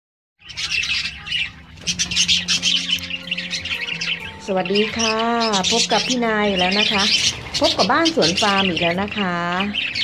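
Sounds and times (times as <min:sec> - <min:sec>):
budgerigars chattering and chirping: 0:00.4 - 0:10.0.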